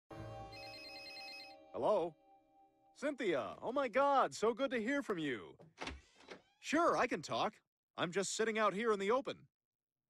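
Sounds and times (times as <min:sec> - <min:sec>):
telephone ringing: 0:00.4 - 0:01.8.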